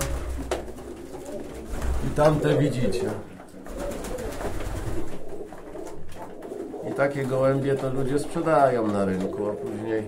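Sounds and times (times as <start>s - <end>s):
pigeons cooing softly: 0.0s - 10.0s.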